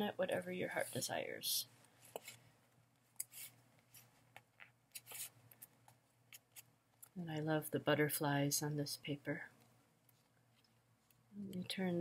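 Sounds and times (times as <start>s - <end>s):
paper rustling: 4.9s - 5.7s.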